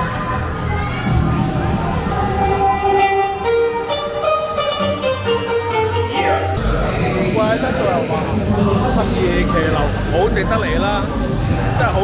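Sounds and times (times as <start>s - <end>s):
melody of held notes: 1.1s - 8.1s.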